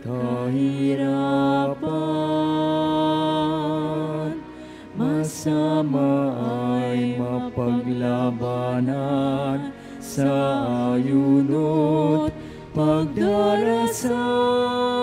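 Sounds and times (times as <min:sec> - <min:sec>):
person singing a hymn: 0:00.0 - 0:15.0
sustained instrumental accompaniment: 0:00.0 - 0:15.0.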